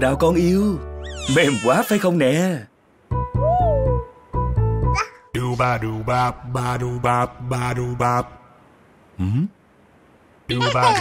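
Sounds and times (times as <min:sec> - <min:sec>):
baby cooing: 0:01.1 - 0:02.0, 0:05.0 - 0:05.2, 0:10.5 - 0:11.0.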